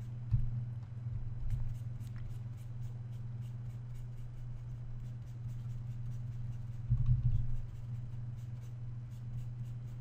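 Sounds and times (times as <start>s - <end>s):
steady low hum: 0.0s - 10.0s
faint scratching at a desk: 1.5s - 10.0s
soft low thump: 6.9s - 7.4s.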